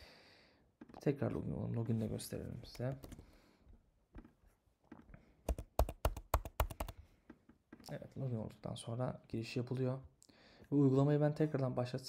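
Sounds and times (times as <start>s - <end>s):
typing on computer keyboard: 5.5s - 7.0s.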